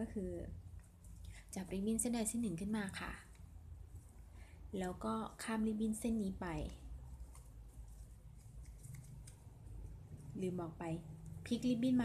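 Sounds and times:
low steady hum: 0.0 - 12.0
ribbon rustling and crinkling: 6.5 - 10.5.

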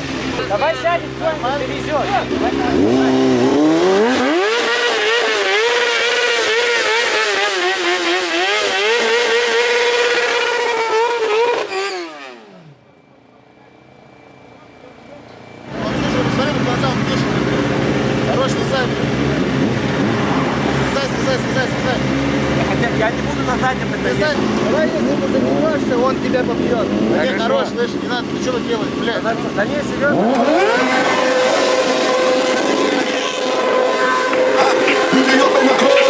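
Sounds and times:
voices: 0.0 - 5.0, 13.2 - 36.0
motorcycles idling: 0.0 - 11.6, 12.6 - 36.0
motorcycle engine revving hard: 0.0 - 12.9, 15.0 - 36.0.

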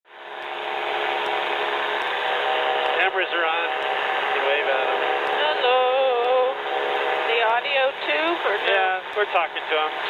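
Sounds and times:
aircraft engine and propeller drone: 0.1 - 10.0.

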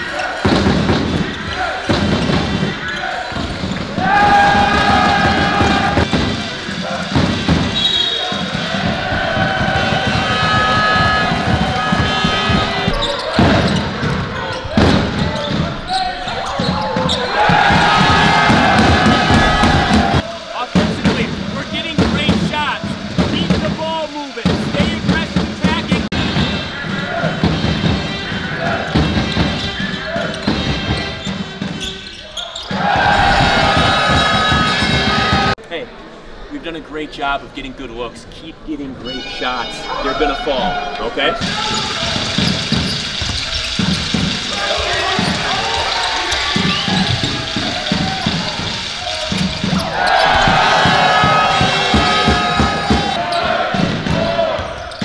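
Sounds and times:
voices in a hall: 0.0 - 55.0.

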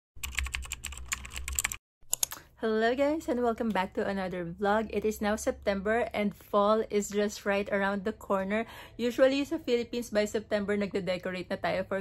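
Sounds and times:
rapid typing-like clicks: 0.2 - 2.4.

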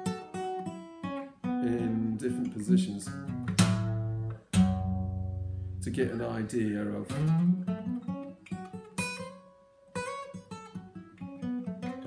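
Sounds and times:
acoustic guitar playing a scale: 0.0 - 12.0.

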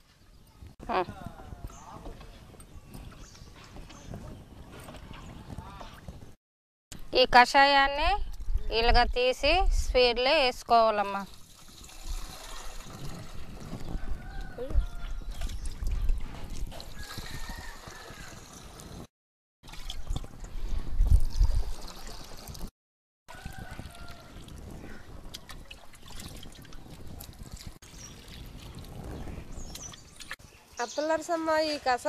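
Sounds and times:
liquid trickling into a plastic can: 11.3 - 13.9, 19.7 - 22.7.

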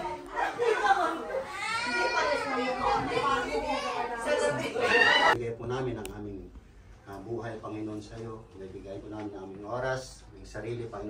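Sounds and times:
people talking: 0.0 - 6.4.

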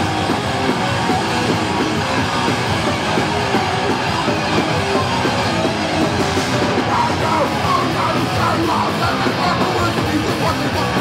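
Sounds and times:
punk band playing: 0.0 - 11.0.

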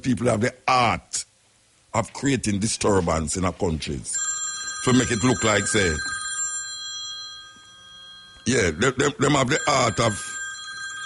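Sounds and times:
person speaking: 4.8 - 6.3, 8.4 - 10.8.

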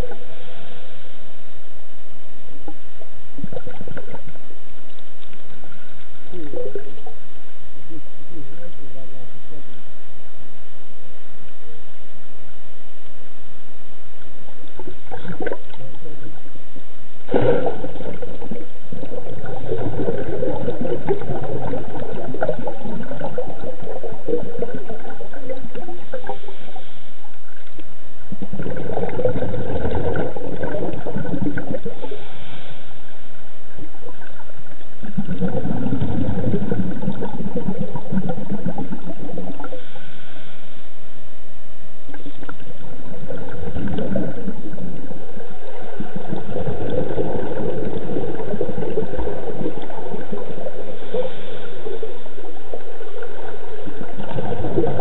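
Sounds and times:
underwater bubbles gurgling: 0.0 - 55.0.

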